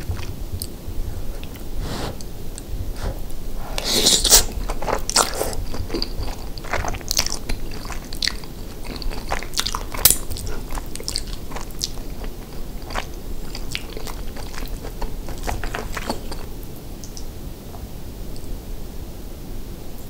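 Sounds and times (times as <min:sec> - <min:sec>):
close chewing mouth clicks: 0:04.1 - 0:17.3.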